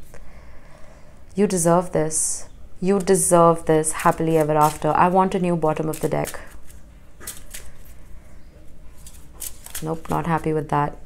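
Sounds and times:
card handling noise: 5.6s - 8.0s, 8.9s - 10.4s.

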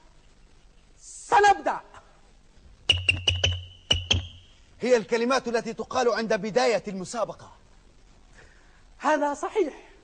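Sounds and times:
electric buzzer tone: 2.9s - 4.7s.

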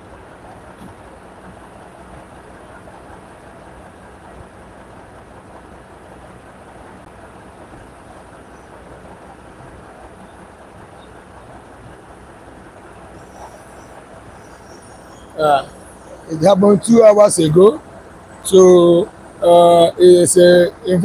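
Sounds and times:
vehicle engines rumbling: 0.0s - 21.0s.

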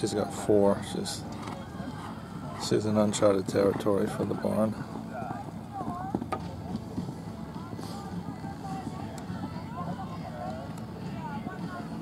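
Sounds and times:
distant voices talking: 0.0s - 12.0s
outdoor background noise: 0.0s - 12.0s.

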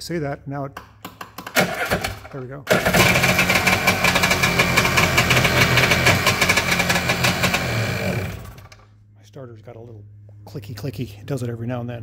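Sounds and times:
electric starter cranking: 1.4s - 8.9s.

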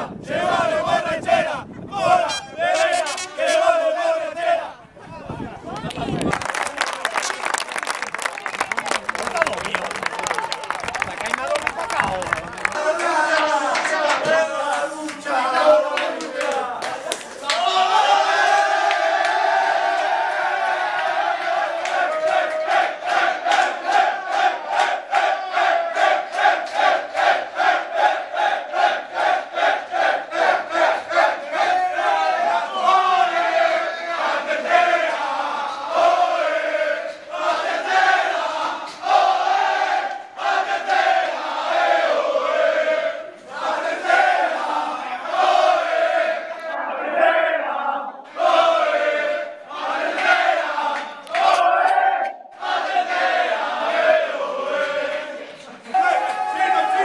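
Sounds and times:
men chanting in unison: 0.0s - 4.8s, 12.8s - 17.2s, 21.0s - 55.8s.

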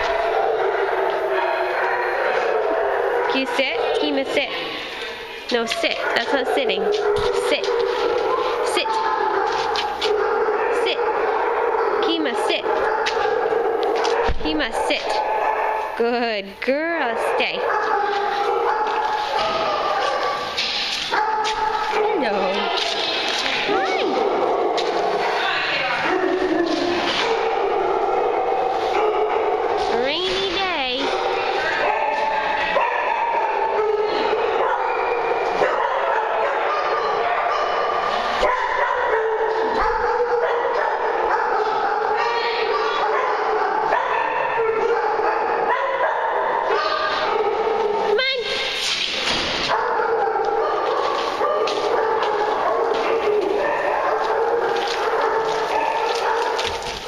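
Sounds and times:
dogs barking: 0.0s - 57.0s.

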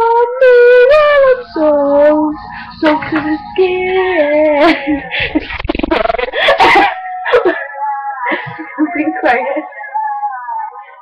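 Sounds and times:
girls laughing and squealing: 4.5s - 9.8s.

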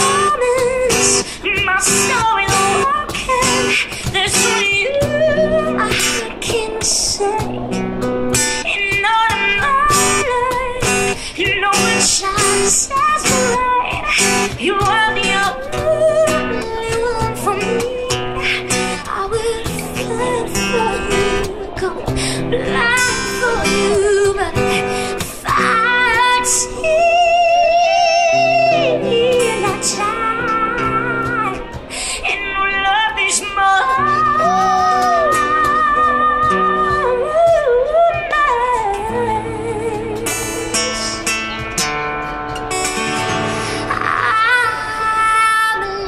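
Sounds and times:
woman singing: 0.0s - 41.4s, 43.0s - 46.0s
cajon percussion: 0.0s - 45.0s
acoustic guitar strumming: 0.0s - 46.0s.

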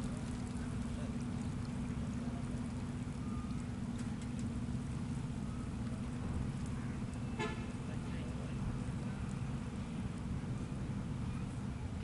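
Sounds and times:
boat engine droning: 0.0s - 12.0s.

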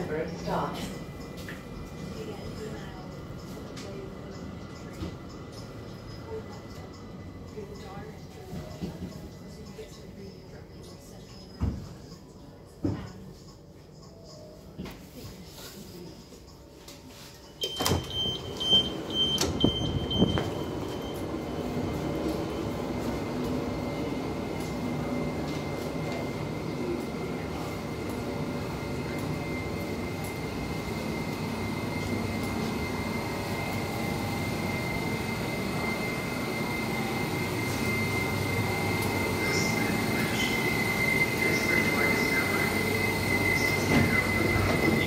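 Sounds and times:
train equipment humming: 0.0s - 14.6s, 16.4s - 45.0s
high door beeps: 17.5s - 21.8s
constant high whine: 17.6s - 45.0s.

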